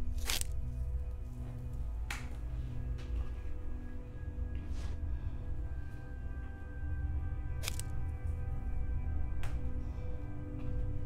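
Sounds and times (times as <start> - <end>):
dark droning film score: 0.0 - 11.0.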